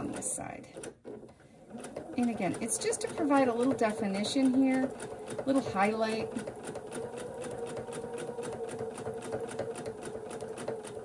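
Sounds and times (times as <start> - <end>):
sewing machine running: 0.0 - 11.0
needle clicking rapidly: 1.7 - 11.0.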